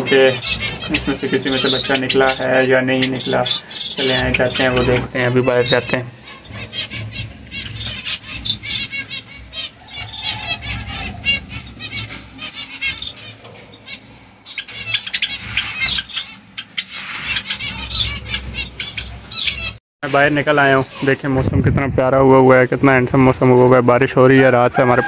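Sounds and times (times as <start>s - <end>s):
wings fluttering: 0.0s - 19.8s
small birds chirping: 0.0s - 25.0s.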